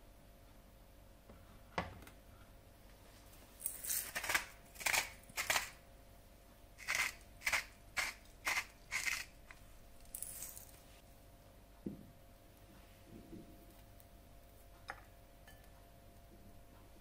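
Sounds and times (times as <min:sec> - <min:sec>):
spice mill grinding: 0:03.6 - 0:05.8, 0:06.8 - 0:10.8.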